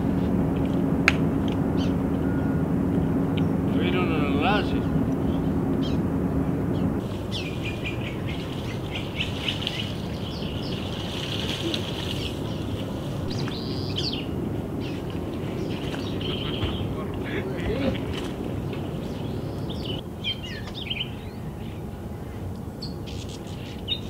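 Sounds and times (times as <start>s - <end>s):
wavering whistle: 0.0s - 3.7s
birds chirping: 0.0s - 24.0s
low motor hum: 0.0s - 24.0s
steady outdoor rumble: 0.0s - 24.0s.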